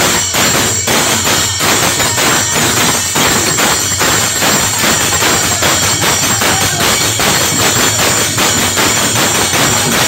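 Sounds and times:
hand drum fast beat: 0.0s - 10.0s
men clapping along: 0.0s - 10.0s.

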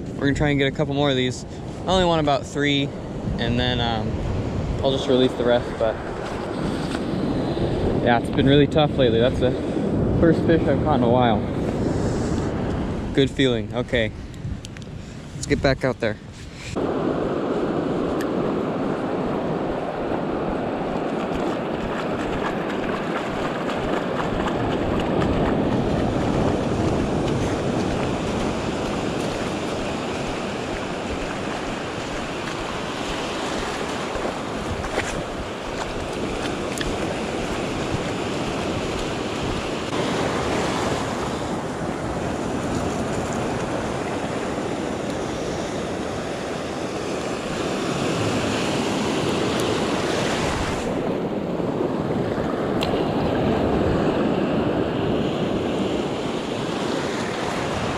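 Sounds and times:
ocean surf breaking: 0.0s - 14.3s, 15.1s - 57.9s
wind buffeting microphone: 0.0s - 57.9s.

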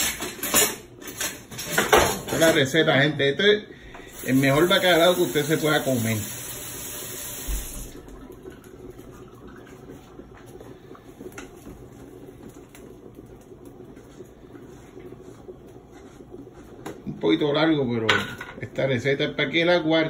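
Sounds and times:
tap water running: 3.8s - 18.7s.

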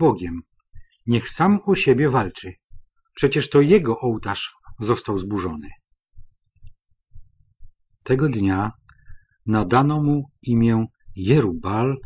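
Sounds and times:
faint low thumps: 0.0s - 12.0s.

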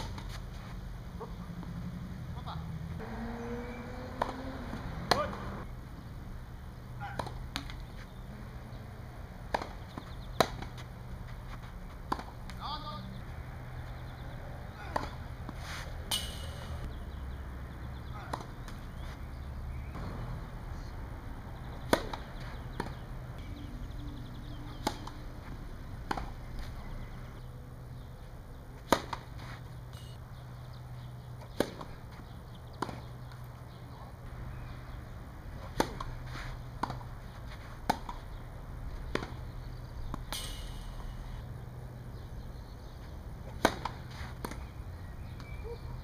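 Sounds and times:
steady low hum: 0.1s - 45.4s
tennis ball struck by rackets: 3.0s - 5.7s, 7.0s - 7.9s, 9.4s - 10.9s, 11.6s - 12.6s, 14.8s - 16.9s, 21.8s - 23.1s, 24.5s - 26.7s, 28.8s - 30.2s, 31.4s - 32.2s, 35.6s - 38.3s, 39.0s - 41.4s, 43.5s - 45.6s.

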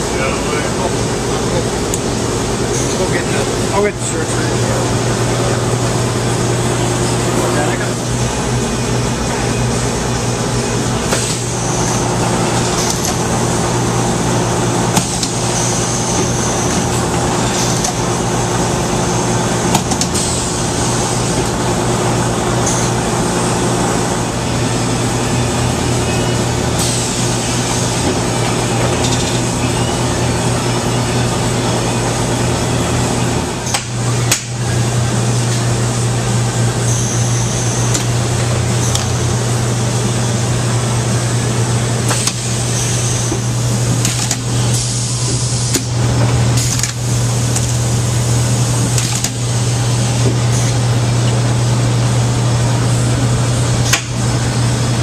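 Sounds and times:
low machine hum: 0.0s - 55.0s.

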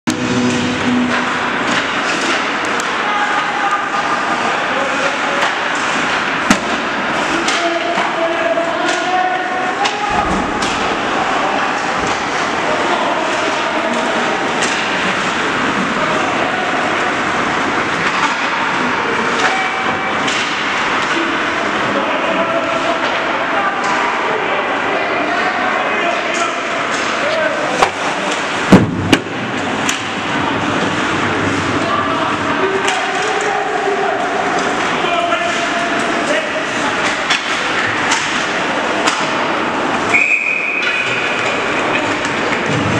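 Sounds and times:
hockey sticks clattering: 0.1s - 24.2s, 26.1s - 42.9s
spectators talking: 0.1s - 42.9s
loud sharp bangs: 27.8s - 30.1s
referee's whistle: 40.1s - 41.0s.

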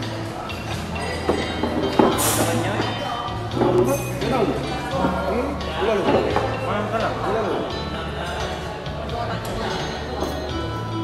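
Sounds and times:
background music with bass: 0.0s - 11.0s
murmur of crowd talking: 0.0s - 11.0s.

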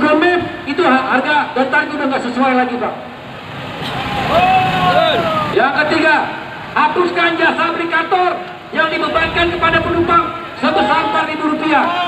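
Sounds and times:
crowd noise: 3.6s - 6.9s.

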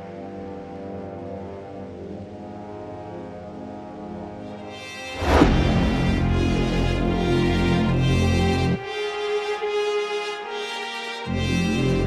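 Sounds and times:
low synth drone: 0.5s - 9.0s.

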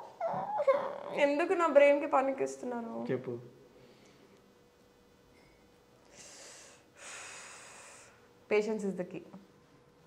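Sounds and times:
person breathing: 6.1s - 8.3s.

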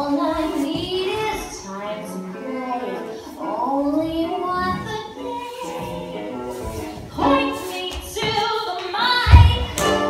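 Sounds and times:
backing music: 0.0s - 10.0s
woman singing: 0.0s - 10.0s.

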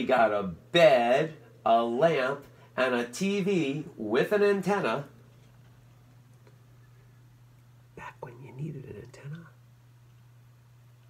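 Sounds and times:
steady low hum: 0.0s - 11.0s
man whispering: 8.0s - 9.6s.

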